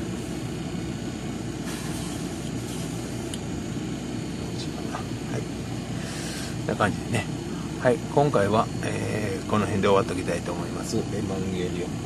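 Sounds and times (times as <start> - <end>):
exhaust fan humming: 0.0 - 12.0
faint hiss: 0.1 - 11.9.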